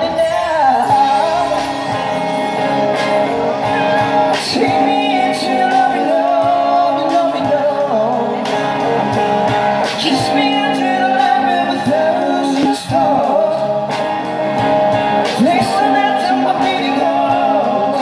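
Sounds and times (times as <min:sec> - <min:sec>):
person singing: 0:00.0 - 0:14.0, 0:15.2 - 0:18.0
electric guitars: 0:00.0 - 0:18.0.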